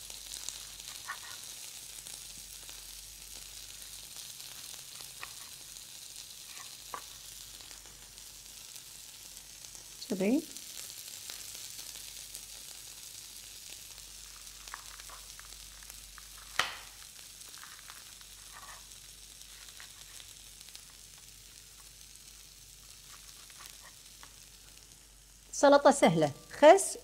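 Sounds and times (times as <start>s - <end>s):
corn kernels sizzling in a pan: 0.0s - 27.0s.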